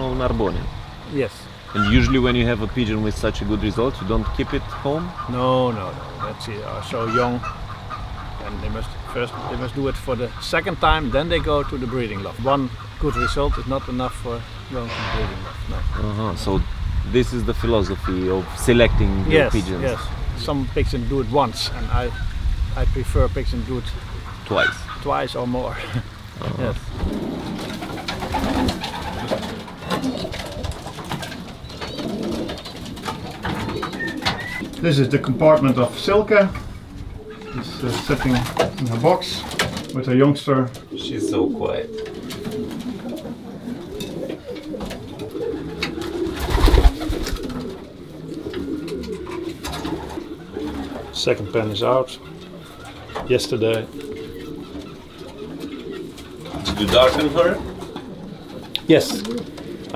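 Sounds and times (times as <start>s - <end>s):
pigeons cooing: 0.0s - 59.9s.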